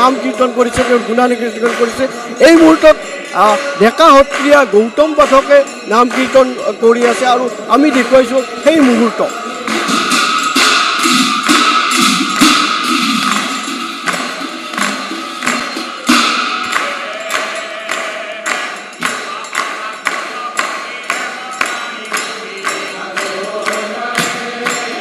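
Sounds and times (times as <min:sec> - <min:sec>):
congregation clapping hands: 0:00.0 - 0:25.0
devotional chanting: 0:00.0 - 0:25.0.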